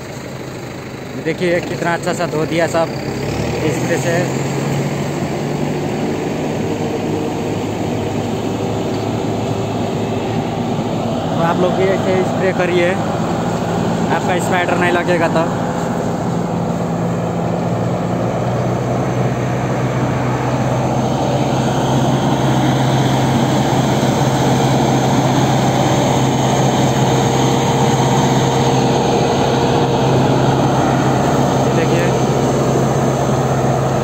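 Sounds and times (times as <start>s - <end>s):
sprayer engine hum: 0.0s - 34.0s.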